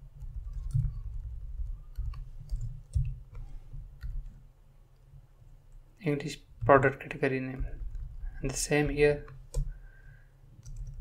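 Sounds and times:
computer keyboard keystrokes: 0.2 - 4.4, 10.6 - 11.0.

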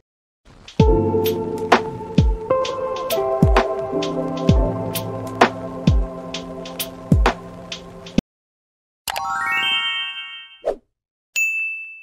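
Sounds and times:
chime ringing: 9.1 - 10.6
bright bell ding: 11.4 - 12.0.

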